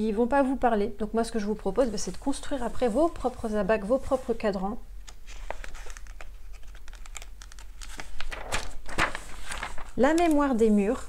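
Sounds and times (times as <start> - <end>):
paper pages rustling: 5.0 - 10.7.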